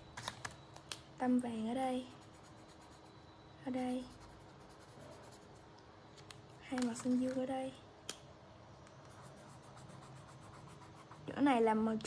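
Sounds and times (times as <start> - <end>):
felt-tip pen scratching on paper: 9.1 - 11.5.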